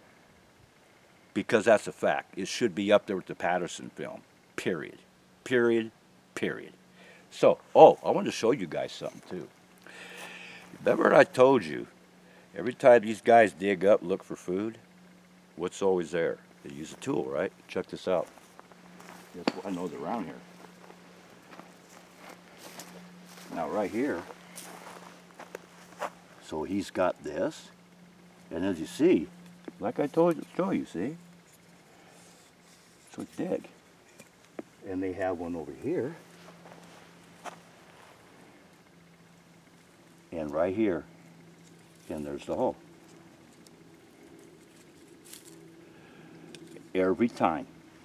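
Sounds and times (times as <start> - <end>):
faint steady hum: 0.0 - 48.0
footsteps on pine needles: 18.1 - 26.5, 36.1 - 38.4.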